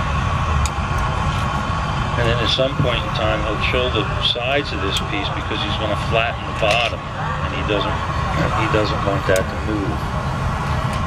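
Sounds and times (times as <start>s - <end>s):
furnace burner rumble: 0.0s - 11.0s.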